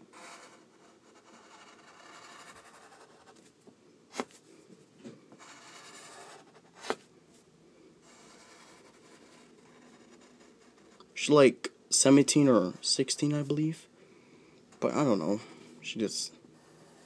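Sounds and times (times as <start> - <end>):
pencil scratching on paper: 0.1 - 3.4, 5.4 - 7.0, 8.0 - 11.0, 16.6 - 17.0.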